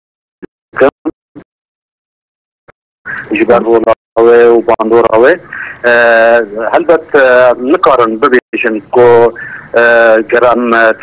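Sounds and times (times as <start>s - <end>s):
man's voice over telephone line: 0.8s - 1.1s, 3.2s - 11.0s.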